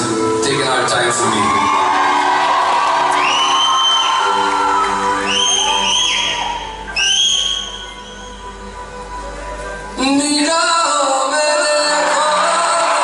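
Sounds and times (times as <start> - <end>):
live band playing chords: 0.0 - 13.0
crowd cheering: 0.9 - 8.4, 11.4 - 13.0
shrill whistles: 3.2 - 8.4.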